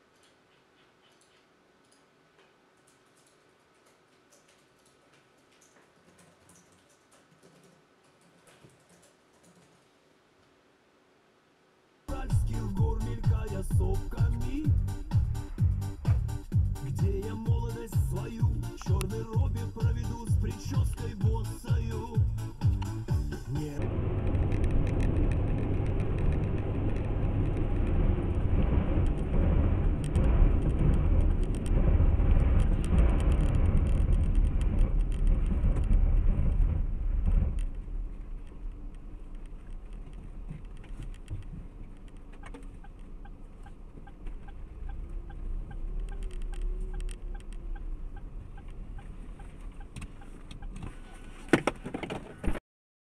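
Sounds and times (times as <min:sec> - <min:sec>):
low hum: 0:12.0 - 0:50.8
car road and engine noise: 0:22.3 - 0:33.3, 0:34.0 - 0:52.3.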